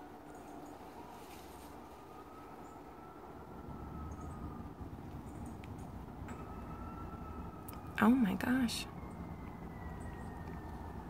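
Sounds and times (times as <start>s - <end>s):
faint thin steady whine: 0.0s - 11.0s.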